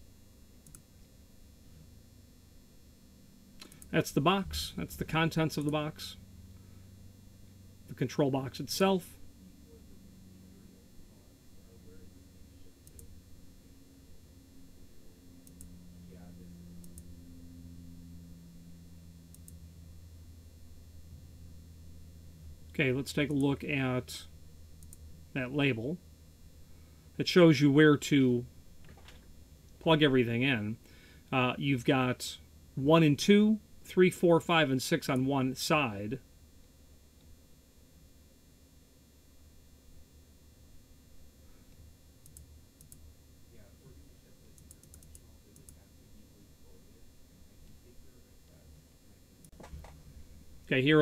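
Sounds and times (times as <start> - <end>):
low electrical hum: 0.0 - 51.0
computer mouse clicks: 0.6 - 0.8, 3.6 - 3.9, 12.8 - 13.1, 42.2 - 43.0, 44.5 - 45.8.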